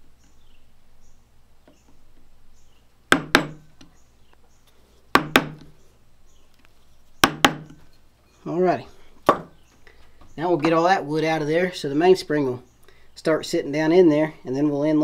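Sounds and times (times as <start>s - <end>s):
wooden mallet striking steel chisel: 3.1s - 3.6s, 5.2s - 5.7s, 7.2s - 7.8s.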